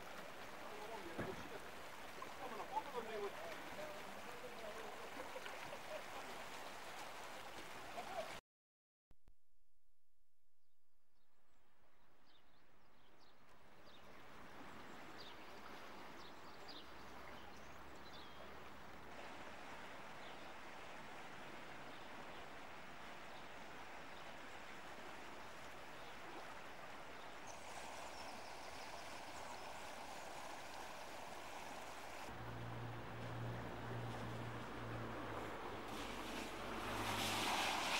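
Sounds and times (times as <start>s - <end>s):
rushing river water: 0.0s - 8.4s, 13.5s - 37.9s.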